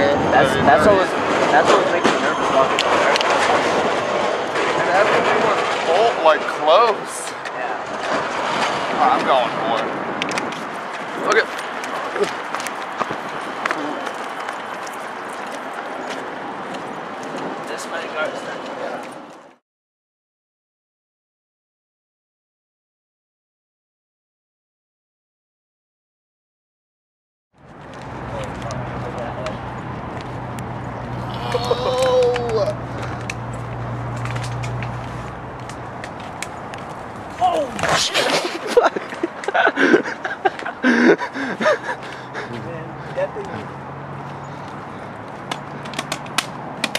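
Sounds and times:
outdoor noise rushing: 0.0 - 19.6, 27.6 - 46.9
running footsteps on pavement: 7.4 - 19.6, 27.6 - 46.9
young men whooping and laughing: 31.1 - 33.1, 37.4 - 43.7.

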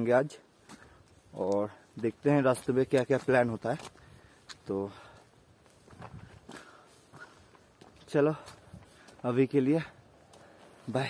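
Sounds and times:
faint footsteps on forest trail: 0.0 - 11.0.

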